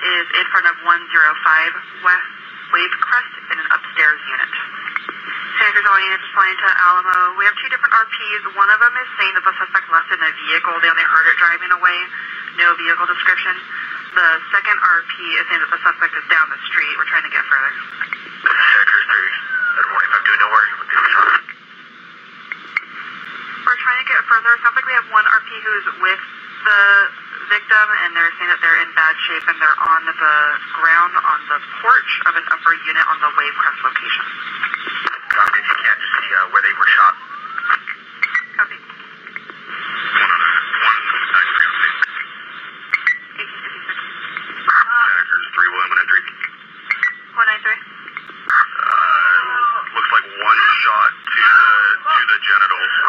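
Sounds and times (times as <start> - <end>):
radio channel hiss: 0.0 - 53.0
faint radio clicks: 4.4 - 5.7, 17.8 - 18.8, 22.4 - 23.0, 33.9 - 36.3, 37.5 - 44.7, 46.1 - 47.2, 48.0 - 49.0
voice over tinny radio: 18.4 - 21.5, 35.1 - 38.0, 39.8 - 42.3, 44.6 - 46.5, 48.5 - 53.0.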